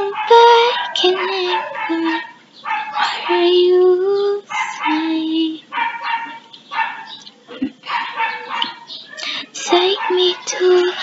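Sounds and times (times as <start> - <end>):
dog barking: 0.0 - 3.5, 4.5 - 5.1, 5.7 - 7.2, 7.8 - 11.0.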